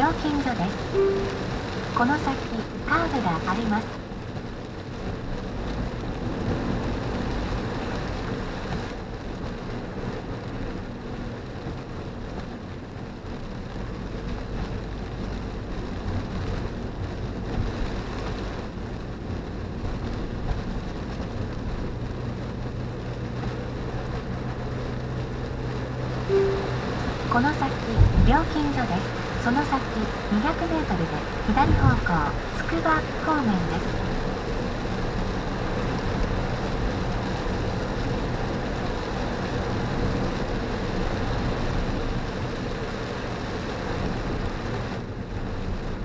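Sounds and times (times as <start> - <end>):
low engine drone: 0.0 - 4.0, 26.2 - 34.3.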